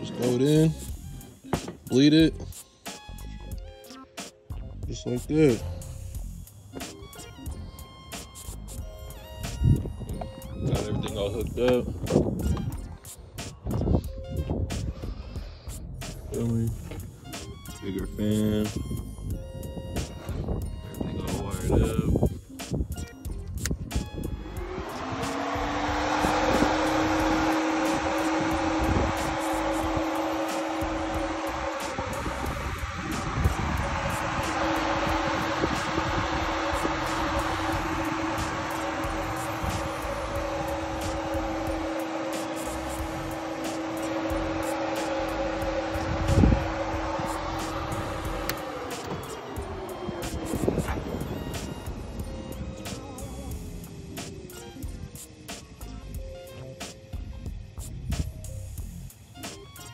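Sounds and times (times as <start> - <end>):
electric fan humming: 23.6 - 59.9
rush of air: 23.9 - 54.4.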